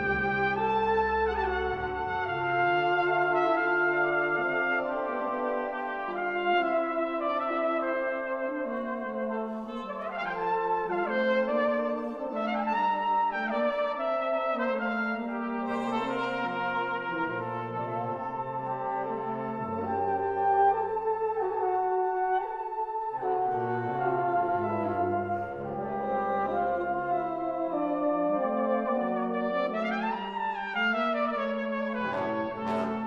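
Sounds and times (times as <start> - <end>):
brass band playing chords: 0.0 - 33.0.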